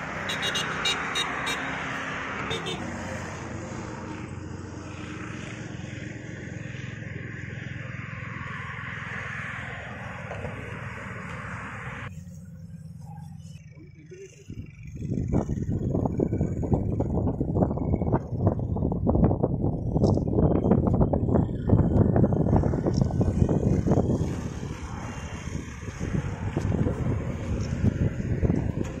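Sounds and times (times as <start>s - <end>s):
wind buffeting microphone: 14.4s - 29.0s.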